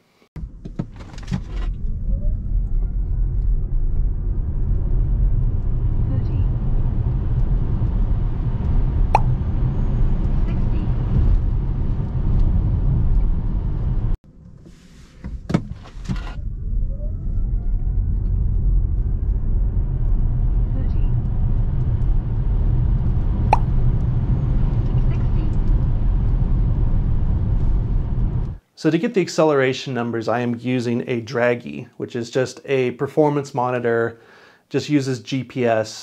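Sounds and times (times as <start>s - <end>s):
road and tyre rumble: 0.4s - 16.8s, 18.0s - 28.6s.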